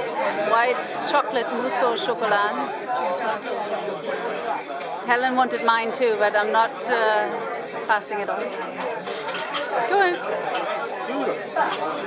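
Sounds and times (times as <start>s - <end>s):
background chatter of people: 0.0s - 12.0s.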